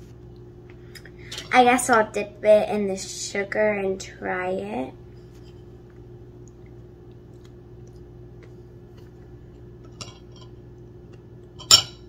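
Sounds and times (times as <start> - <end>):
low room hum: 0.0 - 12.0
wet biting sound: 6.5 - 8.6
spoon clinking on plate: 11.6 - 12.0.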